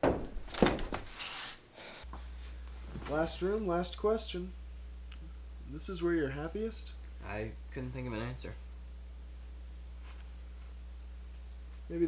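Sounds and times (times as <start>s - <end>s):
steady low hum: 1.6s - 12.0s.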